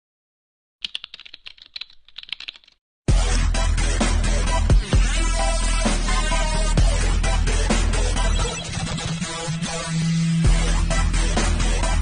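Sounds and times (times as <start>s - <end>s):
keyboard typing clicks: 0.8s - 2.8s
electronic music with deep bass: 3.1s - 12.0s.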